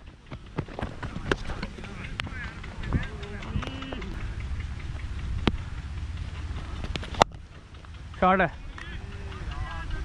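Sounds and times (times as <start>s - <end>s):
wind rumbling on microphone: 0.0s - 10.0s
faint distant voices calling: 0.1s - 10.0s.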